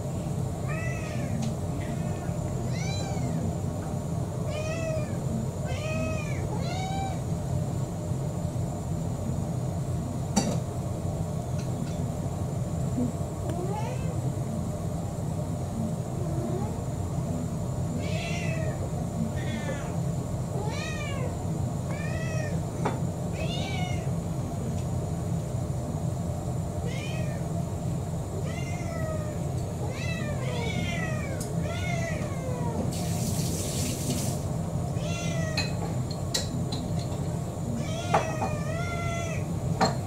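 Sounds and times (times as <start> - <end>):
steady low hum: 0.0 - 40.0
cats meowing: 0.6 - 3.6, 4.5 - 7.2, 13.5 - 14.2, 18.0 - 24.2, 26.8 - 27.5, 28.4 - 32.9, 35.0 - 35.9, 37.7 - 39.6.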